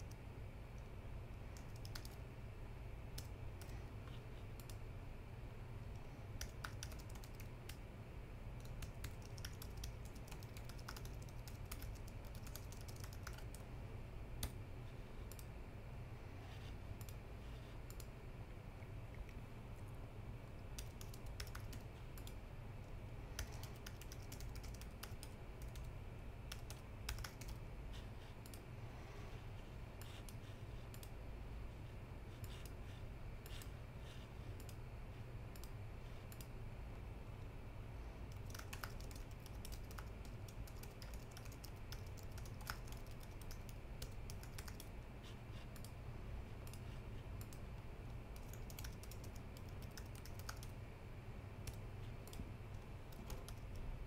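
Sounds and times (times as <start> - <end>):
steady low hum: 0.0 - 54.0
keyboard typing: 1.5 - 2.2, 3.1 - 4.8, 5.9 - 7.8, 8.6 - 13.7, 16.6 - 18.1, 20.5 - 22.4, 23.3 - 28.6, 30.0 - 31.2, 32.3 - 34.8, 35.5 - 36.5, 38.3 - 46.0, 46.6 - 47.7, 48.3 - 50.7, 51.6 - 53.9.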